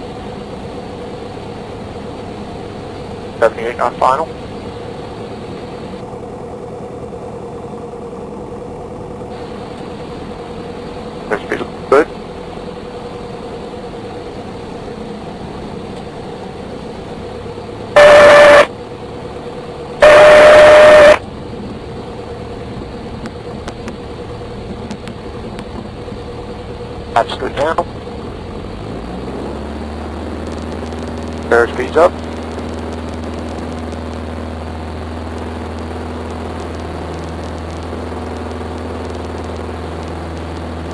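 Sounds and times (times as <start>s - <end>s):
airplane engine and propeller drone: 0.0s - 40.9s
stall warning horn: 17.9s - 19.0s, 19.9s - 21.3s.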